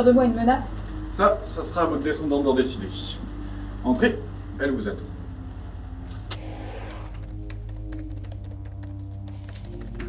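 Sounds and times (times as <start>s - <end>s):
rapid laptop typing: 6.3s - 10.0s.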